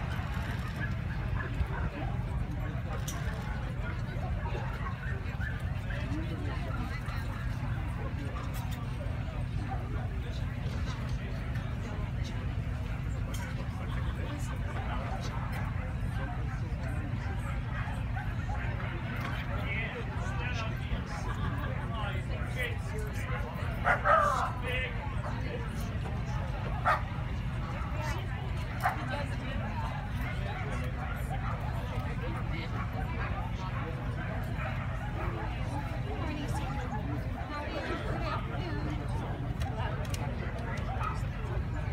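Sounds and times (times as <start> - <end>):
background chatter: 0.0 - 41.9
murmur of people talking: 0.0 - 41.9.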